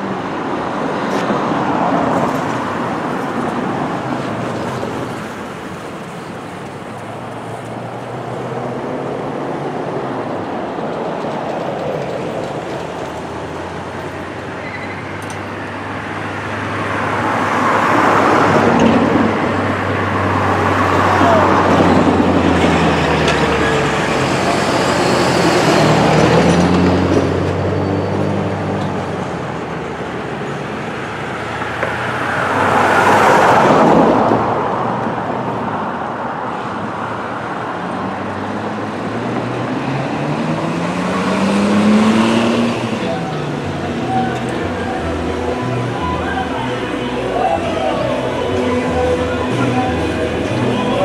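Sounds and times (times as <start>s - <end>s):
cars passing by: 0.0s - 51.0s
road noise hum: 0.0s - 51.0s.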